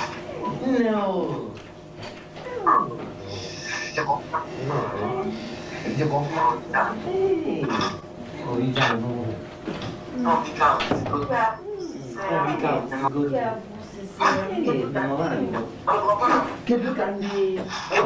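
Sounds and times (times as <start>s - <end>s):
steady hum: 0.0s - 18.0s
woman speaking: 6.7s - 8.0s, 10.1s - 17.8s
man speaking: 8.4s - 9.4s, 12.0s - 13.5s.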